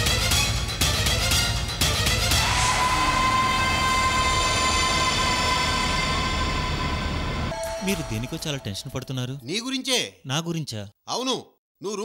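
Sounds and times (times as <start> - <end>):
sharp dramatic hit: 2.4 - 9.2
sustained synthesizer chord: 3.8 - 9.0.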